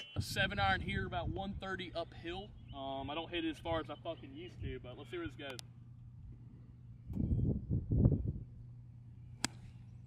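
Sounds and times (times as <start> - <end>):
steady low hum: 0.0 - 10.0
golf club striking ball: 9.4 - 9.8.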